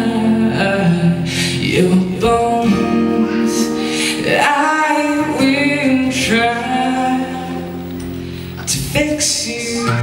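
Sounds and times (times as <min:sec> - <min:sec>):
man singing into a microphone: 0:00.0 - 0:08.0, 0:08.6 - 0:10.0
acoustic guitar: 0:00.0 - 0:10.0.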